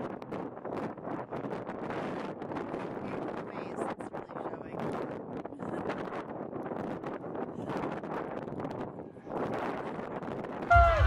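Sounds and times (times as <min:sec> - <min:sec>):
wind blowing on microphone: 0:00.0 - 0:11.0
loud music: 0:10.7 - 0:11.0.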